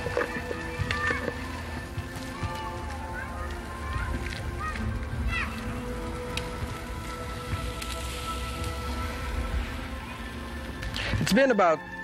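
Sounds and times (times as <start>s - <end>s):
background music: 0.0s - 12.0s
patties sizzling on a grill: 0.0s - 12.0s.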